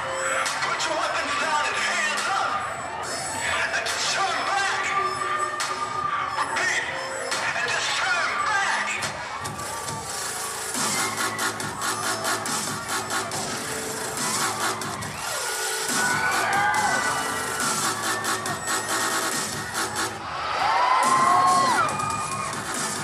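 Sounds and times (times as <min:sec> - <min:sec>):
loud music: 0:00.0 - 0:23.0
audience cheering and screaming: 0:08.0 - 0:23.0.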